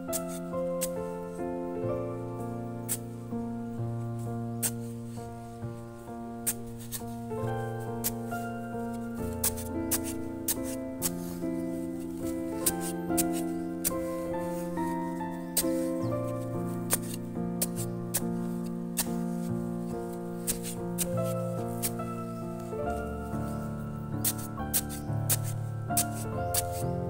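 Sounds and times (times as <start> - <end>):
background music of held notes: 0.0 - 27.0.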